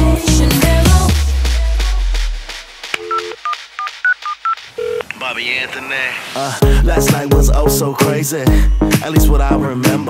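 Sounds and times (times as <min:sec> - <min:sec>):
telephone keypad dialing tones: 0:03.0 - 0:05.1.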